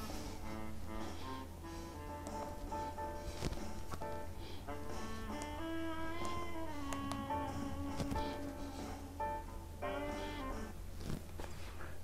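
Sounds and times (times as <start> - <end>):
music leaking from headphones: 0.0 - 12.0.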